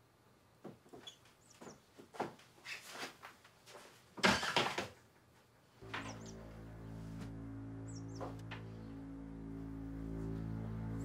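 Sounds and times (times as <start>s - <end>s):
faint bird chirp: 5.9s - 6.5s.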